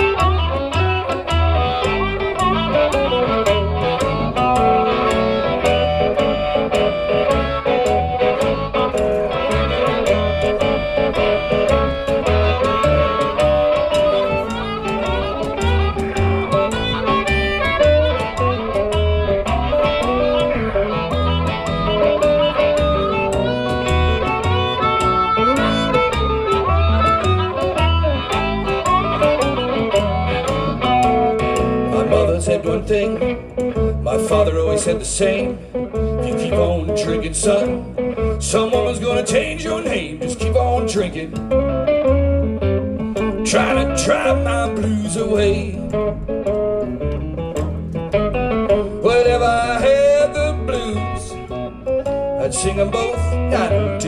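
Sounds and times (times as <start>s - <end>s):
harmonica wailing: 0.0s - 32.4s
electric guitar: 0.0s - 54.0s
plucked upright bass: 0.0s - 54.0s.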